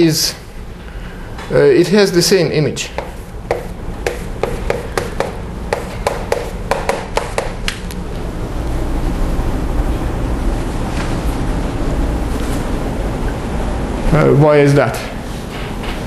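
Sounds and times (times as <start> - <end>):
low room hum: 0.0 - 16.0
chalk tapping on blackboard: 3.0 - 7.6.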